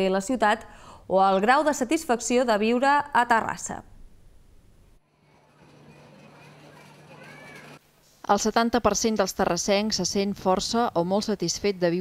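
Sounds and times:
brief high cry: 0:06.7 - 0:07.8.

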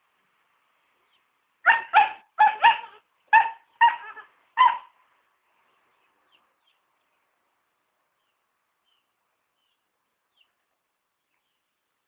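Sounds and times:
dog barking: 0:01.6 - 0:04.9.

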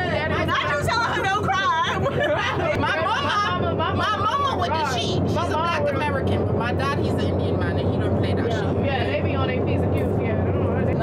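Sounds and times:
jet cabin drone: 0:00.0 - 0:11.0
women talking: 0:00.0 - 0:11.0.

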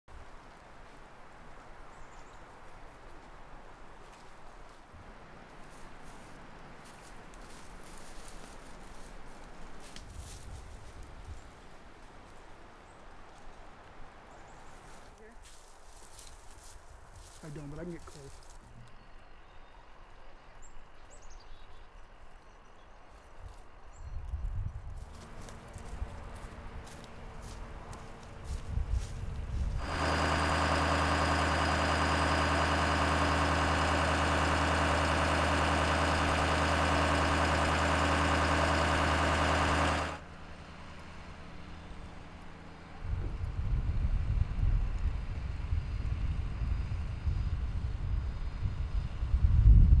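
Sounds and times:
truck engine idling: 0:25.2 - 0:43.2.

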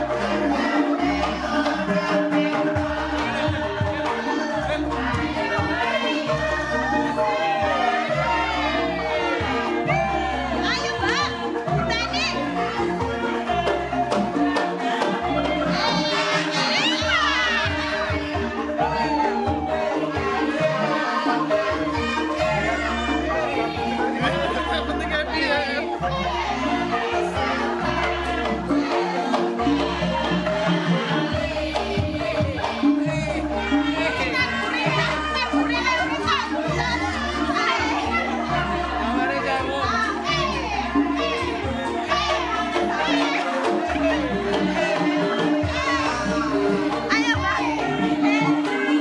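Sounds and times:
bamboo xylophones ringing: 0:00.0 - 0:49.0
crowd calling out and chattering: 0:00.0 - 0:49.0
hand drum: 0:00.0 - 0:49.0
rhythmic low beat: 0:00.0 - 0:49.0.

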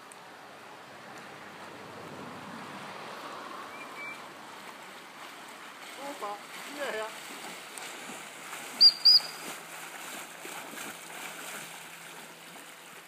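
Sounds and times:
water splashing from swimming dog: 0:01.0 - 0:13.0
faint high whistle: 0:03.7 - 0:04.2, 0:08.8 - 0:09.5.

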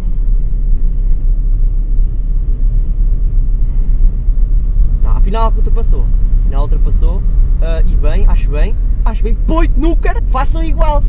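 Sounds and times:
car road and engine noise: 0:00.0 - 0:11.0.

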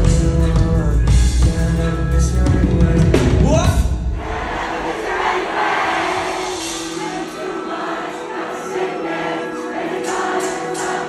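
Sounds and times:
crowd cheering and singing: 0:00.0 - 0:11.0
live band sustained chord: 0:04.6 - 0:11.0.

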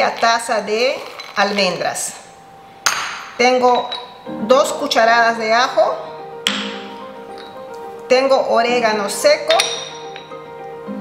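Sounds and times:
ceramic bowl clinking on stone: 0:02.8 - 0:04.2, 0:06.4 - 0:07.7, 0:09.5 - 0:10.5.

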